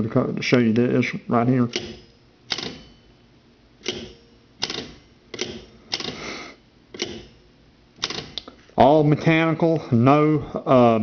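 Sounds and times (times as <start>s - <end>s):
phone hook switch clicks: 1.7s - 2.8s, 3.8s - 6.2s, 6.9s - 7.3s.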